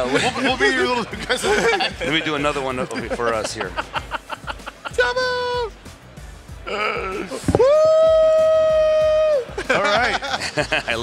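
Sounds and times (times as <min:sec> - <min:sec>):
man shouting woo: 0:05.1 - 0:05.7, 0:07.4 - 0:09.5.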